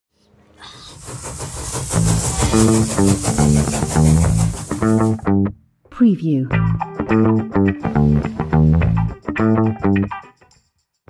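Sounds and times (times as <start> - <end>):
train rushing on rails: 0.6 - 5.3.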